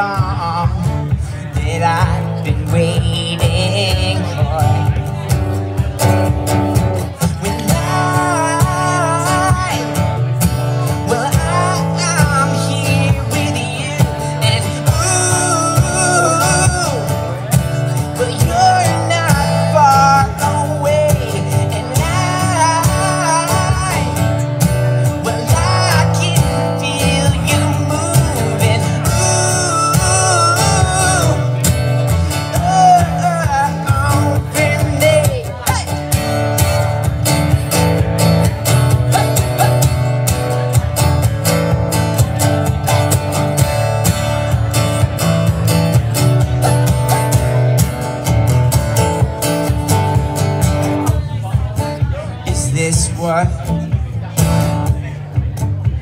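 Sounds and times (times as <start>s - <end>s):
man singing: 0.0s - 43.2s, 44.1s - 56.0s
acoustic guitar strumming: 0.0s - 56.0s.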